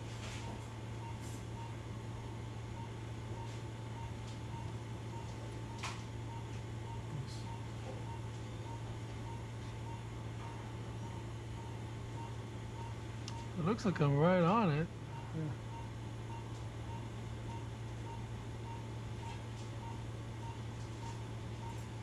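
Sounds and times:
low hum of room equipment: 0.0 - 22.0
patient monitor beeping: 0.0 - 22.0.

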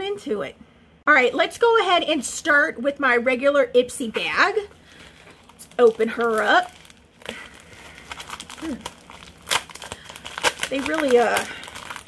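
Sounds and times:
packaging crinkling and rustling: 4.7 - 12.0.

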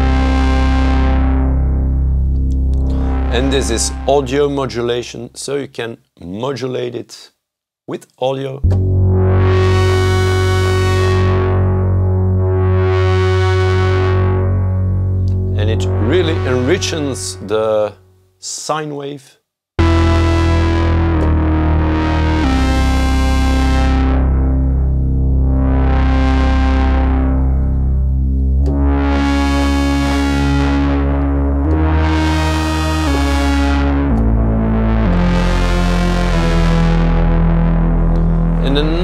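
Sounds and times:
buzzy synthesizer tone: 0.0 - 5.2, 8.6 - 18.3, 19.8 - 39.0.

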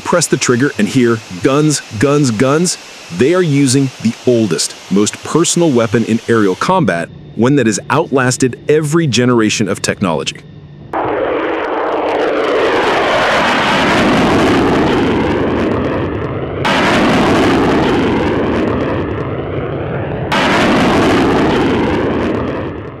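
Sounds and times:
jet engines passing overhead: 0.0 - 23.0.

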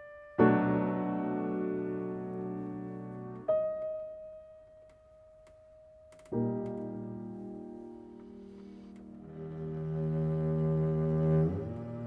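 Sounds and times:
cello and piano duo: 0.0 - 12.0.

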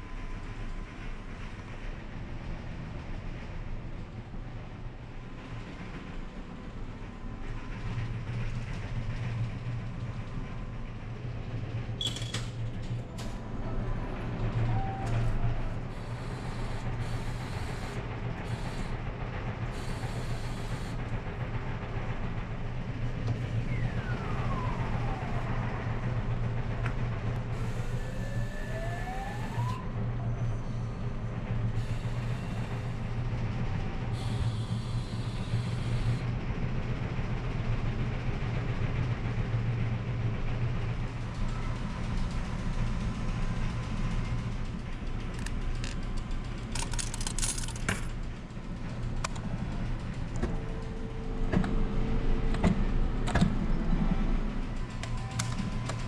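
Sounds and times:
low engine hum: 12.6 - 36.8.

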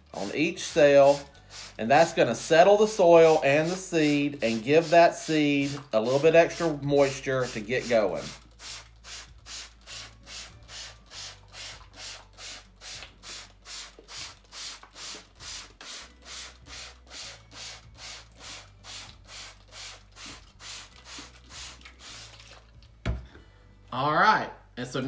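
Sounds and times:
spray bottle squirting water: 0.8 - 2.2, 3.2 - 22.8.

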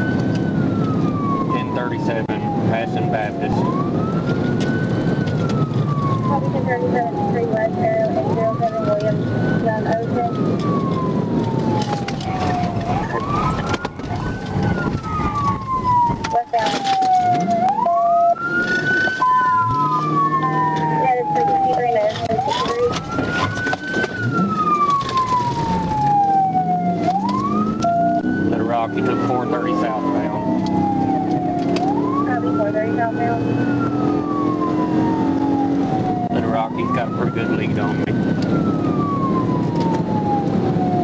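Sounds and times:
car engine: 0.0 - 41.0
police siren wailing: 0.0 - 41.0
road noise: 0.0 - 41.0.

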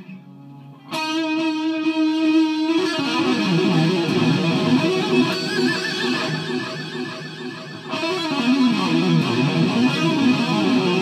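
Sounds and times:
electric guitar lead with vibrato: 0.8 - 11.0.

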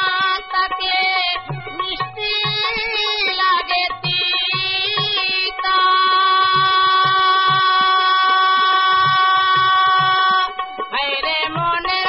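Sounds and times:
harmonium holding a note: 0.0 - 12.0.

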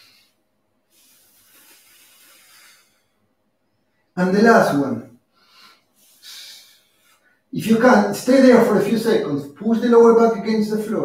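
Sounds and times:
man breathing: 0.0 - 4.2, 5.2 - 7.5.

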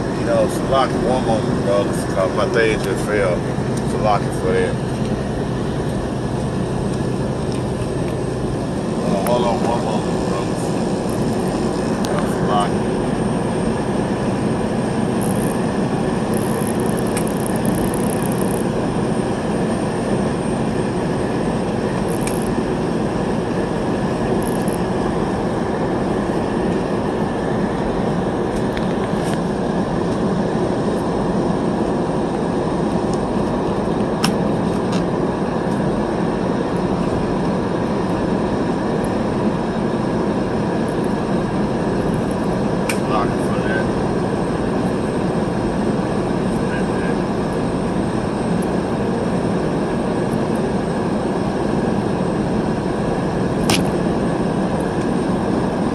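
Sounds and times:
moving vehicle rumbling: 0.0 - 50.6.

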